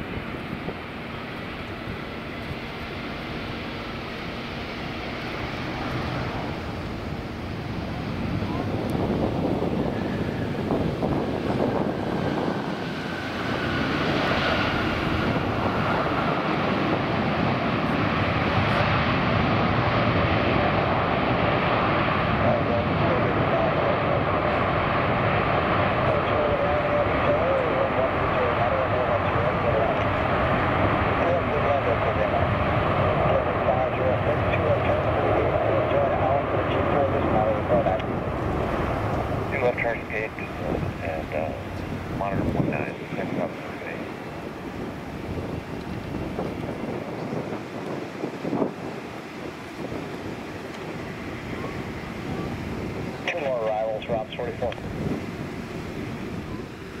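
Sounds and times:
jet engine whine: 0:00.0 - 0:57.0
loud steady jet roar: 0:00.0 - 0:57.0.

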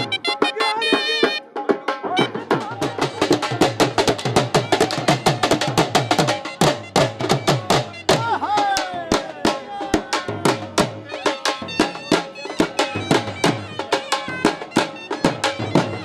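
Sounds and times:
barrel drum beaten fast: 0:00.0 - 0:16.0.

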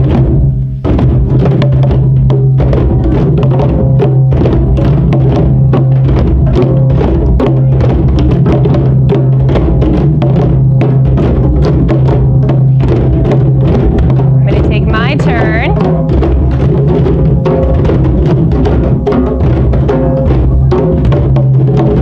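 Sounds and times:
hand drums playing together: 0:00.0 - 0:22.0.

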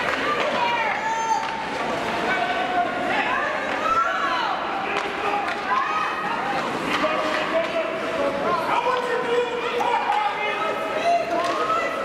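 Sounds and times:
hockey play noise on ice: 0:00.0 - 0:12.0.

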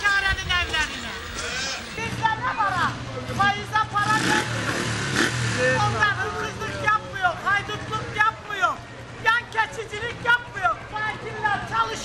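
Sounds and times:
people calling and talking: 0:00.0 - 0:12.0.

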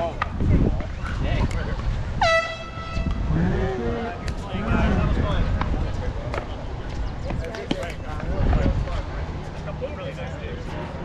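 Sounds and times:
air horn blast: 0:02.2 - 0:03.3.

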